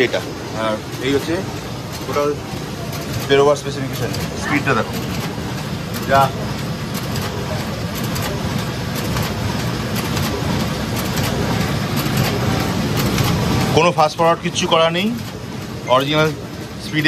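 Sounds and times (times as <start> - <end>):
printer running with rapid patter: 0.0 - 17.0.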